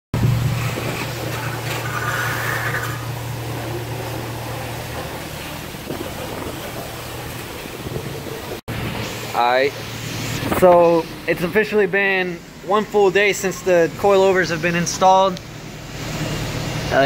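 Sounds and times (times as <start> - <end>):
vehicle engine running: 0.1 - 17.0.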